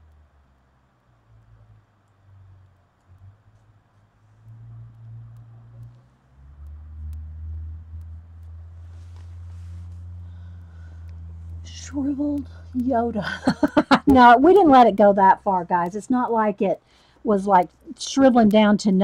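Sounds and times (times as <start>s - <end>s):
faint ticks: 0.0s - 19.0s
low hum: 0.0s - 19.0s.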